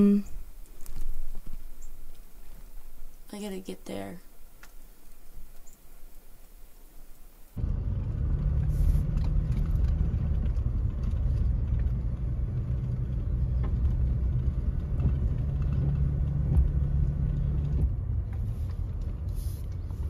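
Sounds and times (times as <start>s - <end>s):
car engine and tyres rumbling: 4.5s - 20.0s.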